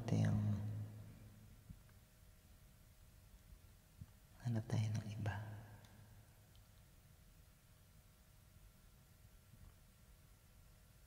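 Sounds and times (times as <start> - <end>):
man speaking: 0.0 - 0.8, 4.4 - 5.7.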